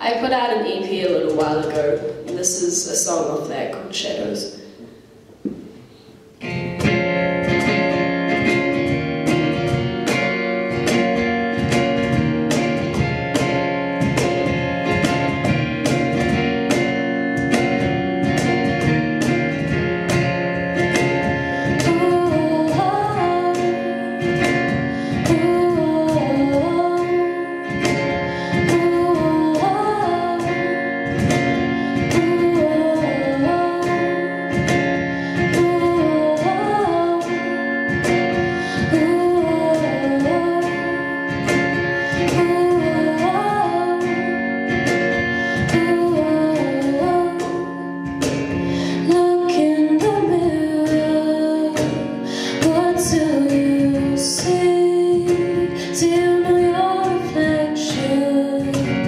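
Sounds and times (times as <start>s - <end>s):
cajon beat: 5.4s - 59.0s
strummed acoustic guitar: 6.4s - 59.0s
woman singing: 21.0s - 59.0s.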